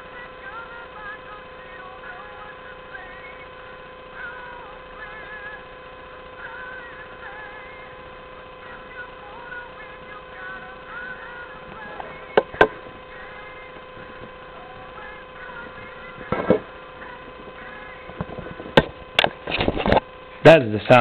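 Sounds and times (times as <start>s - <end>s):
constant high tone: 0.0s - 19.3s
steady hiss: 0.0s - 21.0s.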